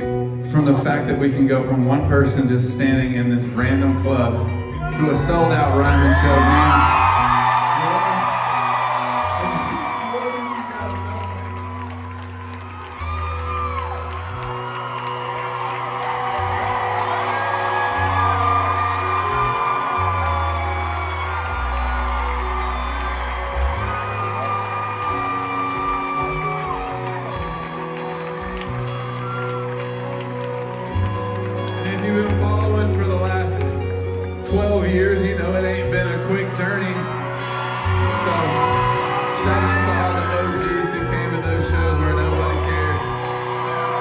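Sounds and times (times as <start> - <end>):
live band soft instrumental: 0.0 - 44.0
crowd cheering and whooping: 3.5 - 44.0.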